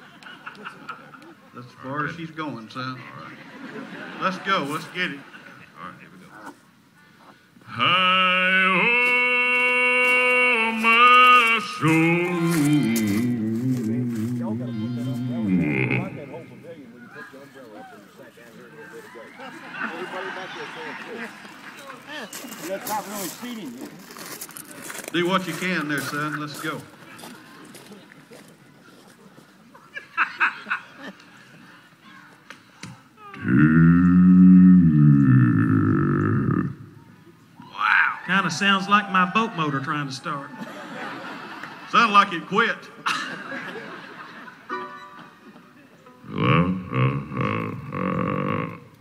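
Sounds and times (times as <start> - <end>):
bass singer low growling note: 12.3 - 16.6, 33.4 - 37.0, 46.2 - 49.0.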